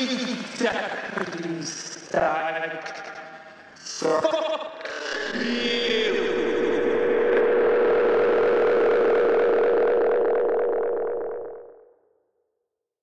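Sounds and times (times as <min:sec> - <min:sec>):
distorted electronic sustained tone: 0:05.3 - 0:11.8.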